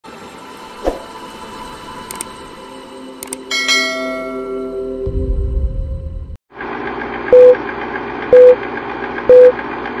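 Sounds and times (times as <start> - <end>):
bright bell-like chime: 3.5 - 4.9.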